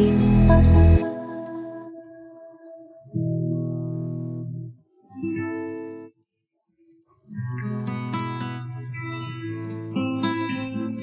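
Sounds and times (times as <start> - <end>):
guitar chords: 0.0 - 6.1, 7.3 - 11.0.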